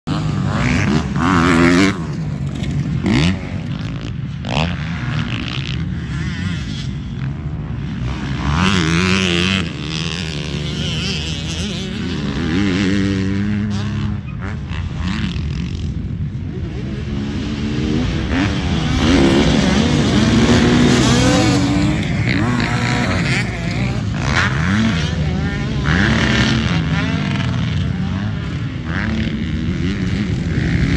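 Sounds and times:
dirt bike engines revving: 0.1 - 30.9.

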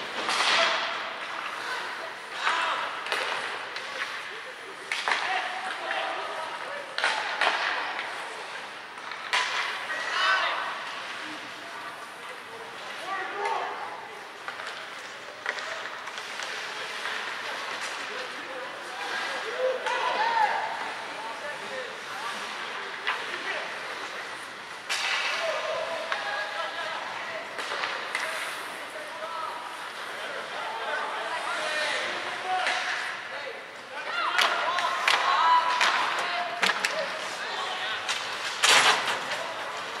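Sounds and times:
puck and stick knocks: 0.0 - 1.0, 2.4 - 4.1, 9.0 - 9.9, 24.8 - 25.5, 27.6 - 28.4, 32.6 - 33.1, 34.4 - 37.1, 38.1 - 39.4
voices and shouts echoing: 0.4 - 40.0.

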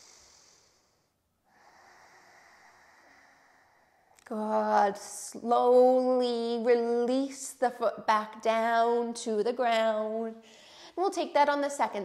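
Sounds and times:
woman breathing through nose: 0.0 - 4.2, 10.4 - 11.0.

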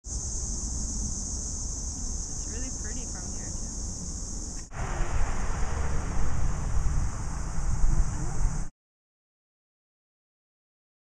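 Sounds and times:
steady high hiss: 0.0 - 8.7
low rumble: 2.4 - 8.7
wind on microphone: 2.4 - 8.7.

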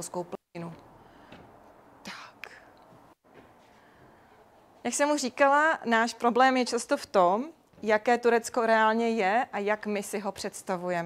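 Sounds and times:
soft breath: 0.9 - 2.9, 3.5 - 4.8.

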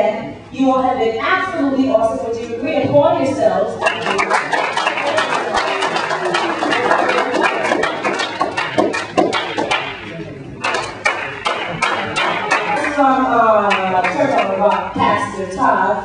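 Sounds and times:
voices: 0.0 - 16.0
crowd applauding and cheering: 3.8 - 15.0.

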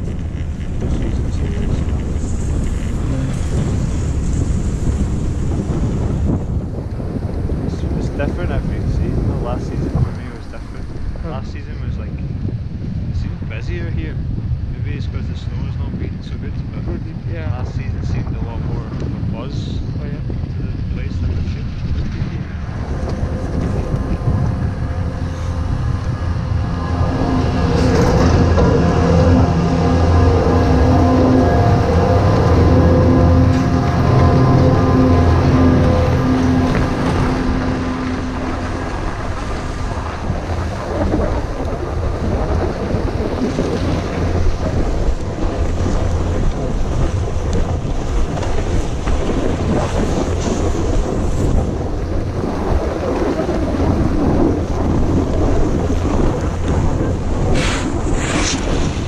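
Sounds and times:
snowboard scraping over snow: 0.0 - 11.5, 27.0 - 59.0
steady droning hum: 0.0 - 18.2, 19.4 - 59.0
wind buffeting microphone: 0.0 - 59.0.

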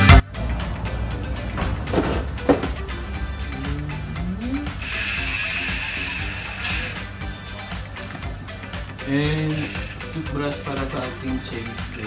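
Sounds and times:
steady hiss: 3.0 - 11.0
bike hub ratchet clicking: 3.4 - 7.2, 9.0 - 10.4.

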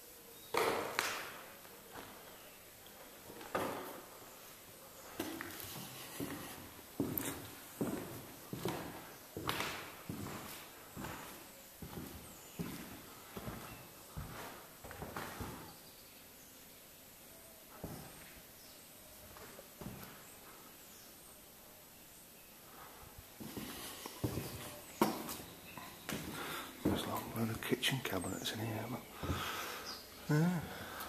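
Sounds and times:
footsteps walking: 0.6 - 15.8, 17.7 - 18.4, 19.2 - 20.7, 22.7 - 28.6, 29.2 - 29.8.

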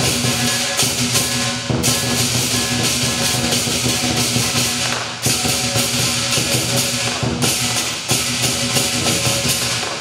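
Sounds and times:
big drum beating: 0.0 - 10.0
cymbals clashing: 0.0 - 10.0.

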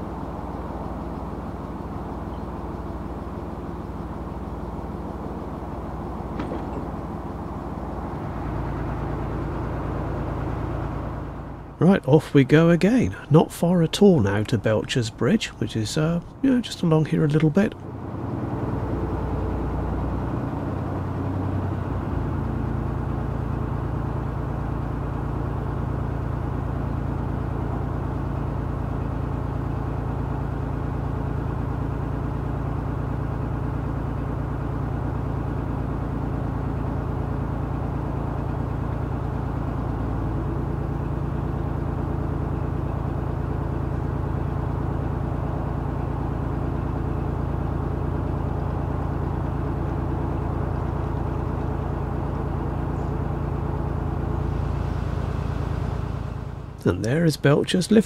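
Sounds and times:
diesel boat engine running: 0.0 - 58.0.

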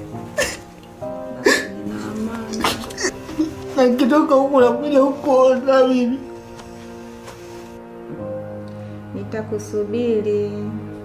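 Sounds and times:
soft background music chords: 0.0 - 11.0
person sobbing: 0.4 - 0.6, 1.4 - 3.6.

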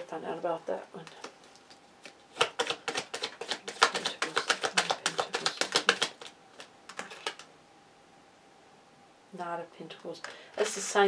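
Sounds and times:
cards being shuffled: 1.0 - 7.5.

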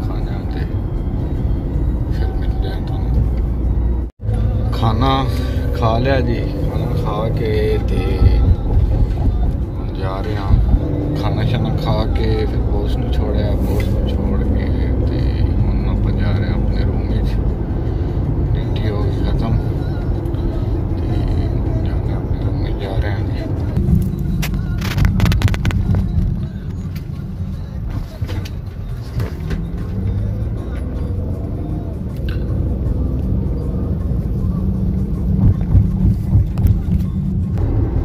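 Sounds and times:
engine and tyre rumble: 0.0 - 38.0
music or voice: 1.9 - 3.6, 4.2 - 17.6, 18.3 - 28.4.

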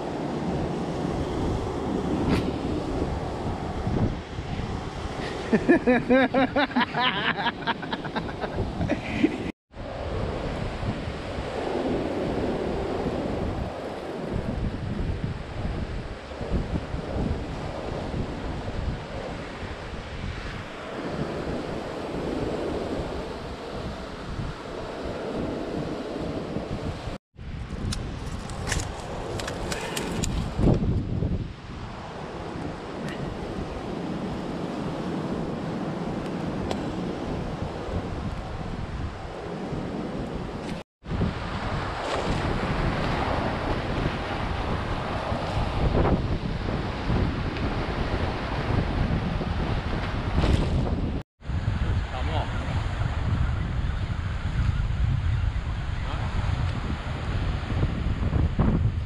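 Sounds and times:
surf washing onto beach: 0.0 - 27.2, 28.0 - 53.3
wind buffeting microphone: 0.0 - 59.0.

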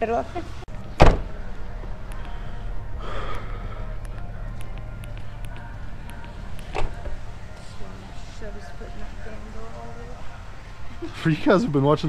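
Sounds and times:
dumpster lid slamming: 1.0 - 1.4.

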